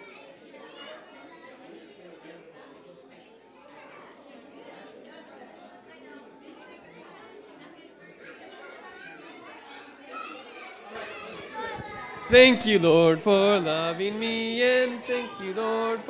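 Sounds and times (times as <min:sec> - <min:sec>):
indistinct chatter of adults and children: 0:00.0 - 0:16.0.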